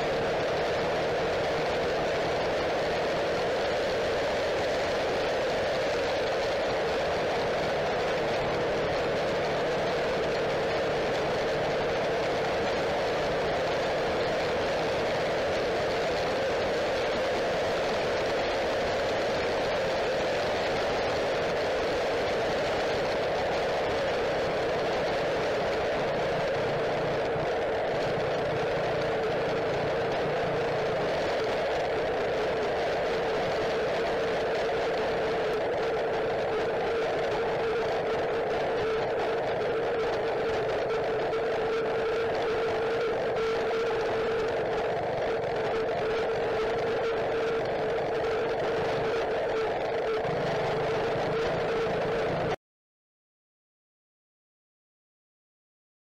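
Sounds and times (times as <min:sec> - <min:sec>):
go-kart engine running: 0:00.0 - 0:52.6.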